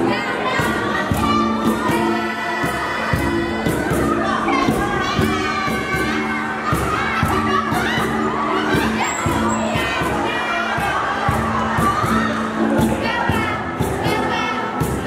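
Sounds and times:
group of voices shouting: 0.0 - 15.0
rhythmic backing music: 0.0 - 15.0.

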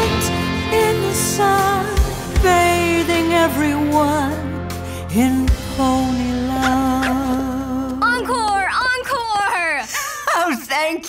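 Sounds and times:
song music: 0.0 - 9.8.

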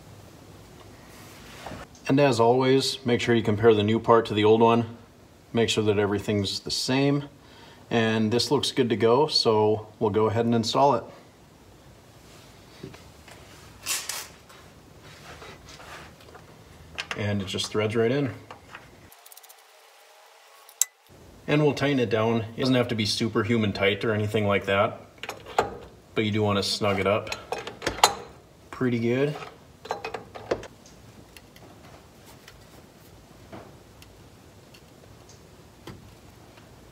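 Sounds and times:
rustle: 0.0 - 2.4, 11.0 - 22.7, 30.6 - 36.9
soft scuffs: 14.4 - 16.5.

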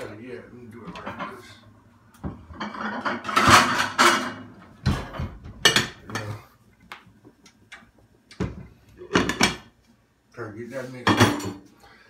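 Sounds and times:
cookware and utensils clattering: 0.8 - 6.5, 8.4 - 9.8, 10.9 - 11.7.

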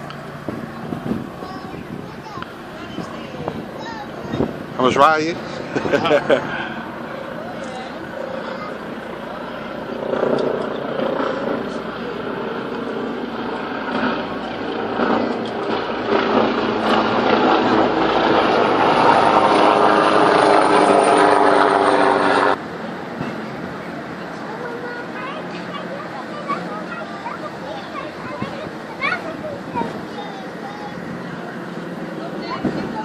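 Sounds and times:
helicopter flying overhead: 0.0 - 33.0.

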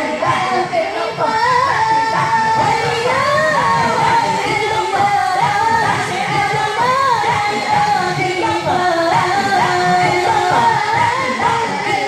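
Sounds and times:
women singing a devotional chant: 0.0 - 12.0.

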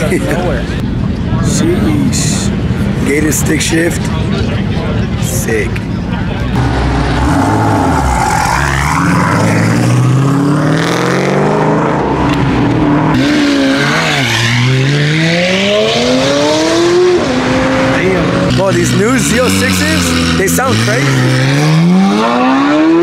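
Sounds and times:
car engines revving: 0.0 - 23.0.

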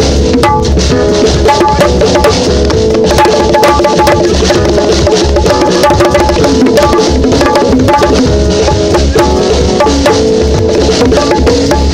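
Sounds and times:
bongos struck by hand: 0.0 - 11.9
live band playing: 0.0 - 11.9.

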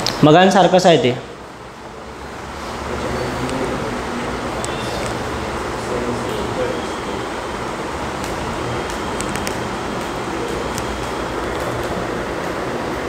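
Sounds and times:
room hum and hiss: 0.0 - 13.0.

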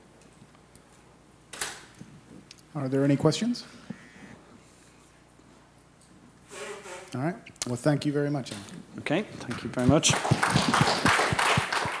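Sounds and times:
audience applauding: 9.5 - 12.0.

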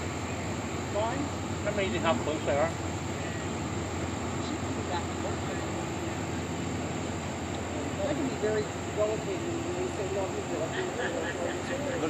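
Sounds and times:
boat diesel engines droning: 0.0 - 12.0
faint voices murmuring: 0.1 - 12.0.

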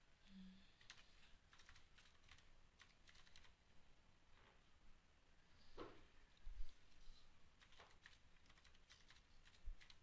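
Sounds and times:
computer keyboard typing: 0.8 - 3.6, 7.6 - 10.0.

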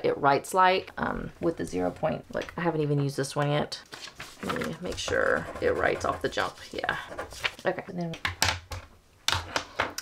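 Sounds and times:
pen scratching on paper: 4.8 - 7.6.

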